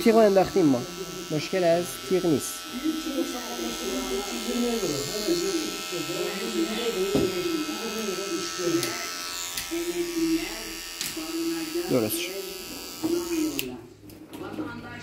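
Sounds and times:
electric hair clipper buzzing: 0.0 - 13.8.

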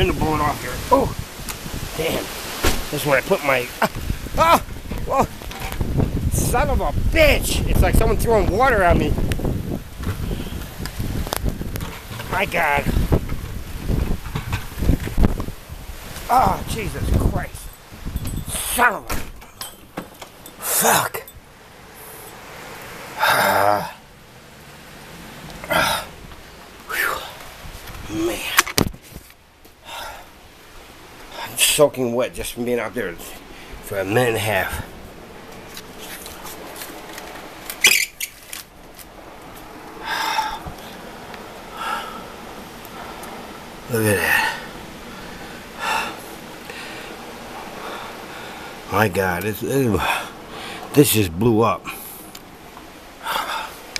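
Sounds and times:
strong wind gusting on microphone: 0.0 - 19.4, 25.0 - 29.3, 32.4 - 52.0
wind-driven rain: 0.0 - 53.9.

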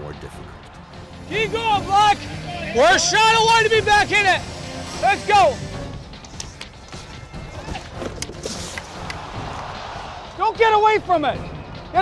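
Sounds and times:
background music: 0.0 - 12.0
hockey sticks and puck clacking: 6.2 - 9.2
skates scraping ice: 6.2 - 9.3.

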